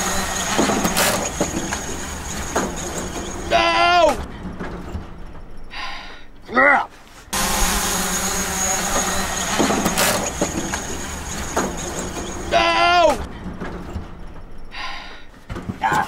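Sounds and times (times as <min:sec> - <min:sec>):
steady high whine: 0:00.0 - 0:03.8, 0:07.4 - 0:13.4
wind and road noise: 0:00.0 - 0:16.0.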